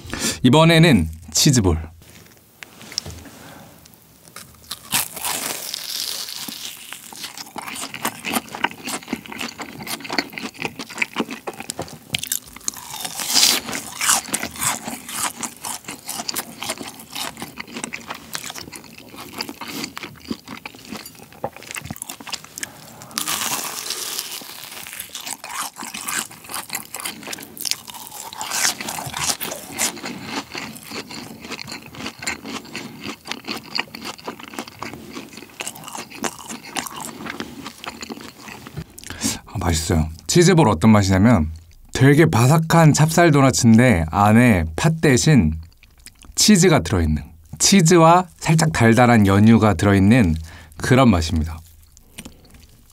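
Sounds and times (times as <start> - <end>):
crunching and chewing snacks: 3.8 - 39.5, 45.6 - 46.6, 47.2 - 52.9.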